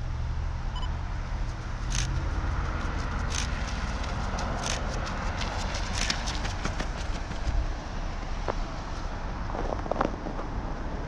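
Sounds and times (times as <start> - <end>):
running footsteps on asphalt: 1.4 - 10.4.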